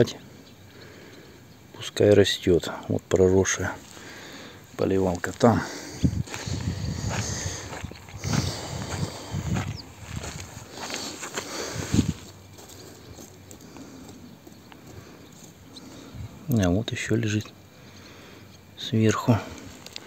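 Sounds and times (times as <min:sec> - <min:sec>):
footsteps on loose soil: 0:03.6 - 0:16.2.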